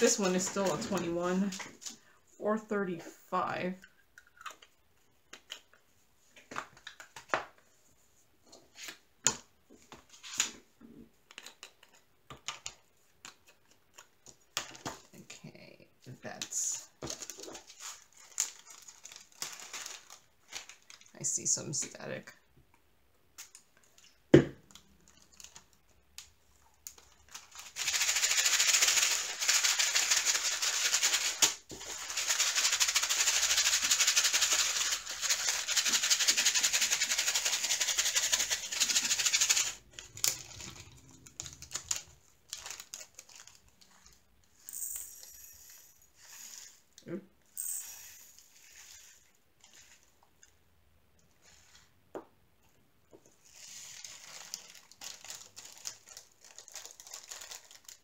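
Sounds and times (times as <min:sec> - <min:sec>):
plastic bag crinkling: 0:17.0 - 0:21.2, 0:26.8 - 0:44.3, 0:53.4 - 0:58.0
tiny drills rattling in plastic bag: 0:53.6 - 0:58.0.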